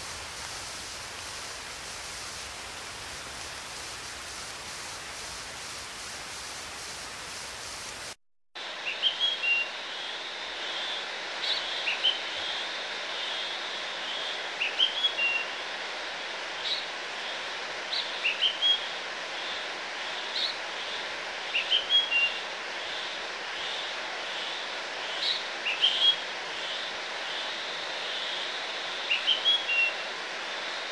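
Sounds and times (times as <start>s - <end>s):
steady rushing hiss: 0.0s - 30.9s.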